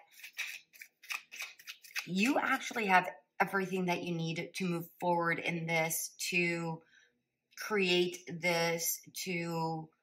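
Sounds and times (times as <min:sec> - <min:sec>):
cards being shuffled: 0:00.1 - 0:02.1.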